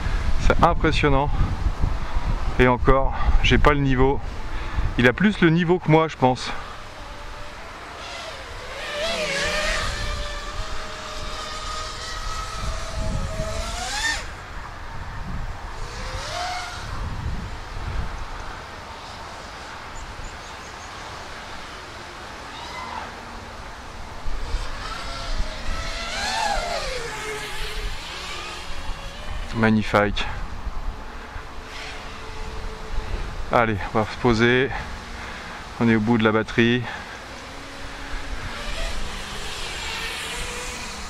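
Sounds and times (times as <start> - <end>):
quadcopter motors whining: 3.2 - 41.0.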